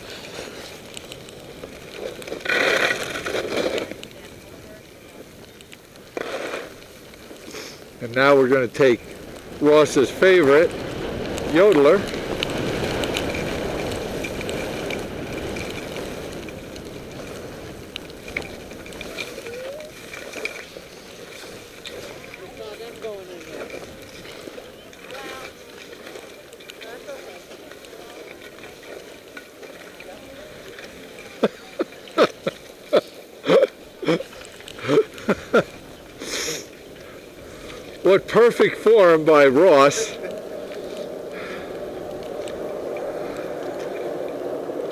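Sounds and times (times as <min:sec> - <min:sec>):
skis sliding over snow: 0:00.0 - 0:44.9
wind on microphone: 0:08.9 - 0:25.5, 0:39.1 - 0:44.9.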